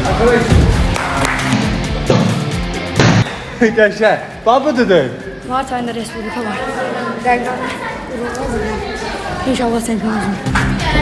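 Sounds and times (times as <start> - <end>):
loud background music: 0.0 - 11.0.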